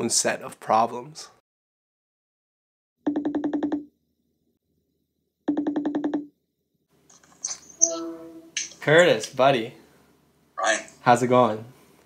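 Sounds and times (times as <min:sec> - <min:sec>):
electronic warbling ring tone: 0:07.8 - 0:08.6.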